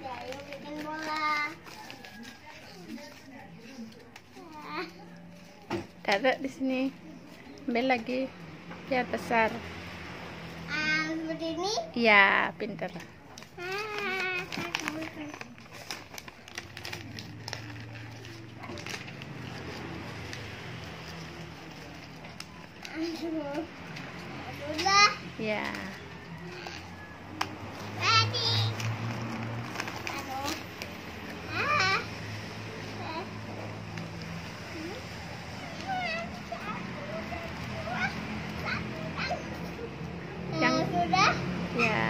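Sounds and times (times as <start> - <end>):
child's voice: 0.0 - 1.7, 4.4 - 5.1, 10.7 - 12.0, 13.6 - 15.5, 24.5 - 25.4, 28.0 - 28.9, 31.5 - 32.1, 33.0 - 33.4, 35.6 - 39.9, 40.5 - 42.0
paper being crumpled: 0.0 - 5.6, 13.3 - 24.9.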